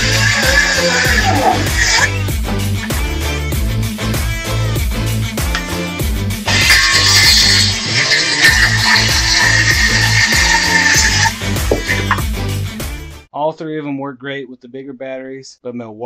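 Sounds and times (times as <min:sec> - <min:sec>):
circular saw cutting board: 0:00.0 - 0:02.2, 0:06.5 - 0:12.2
background music with beat: 0:00.0 - 0:13.3.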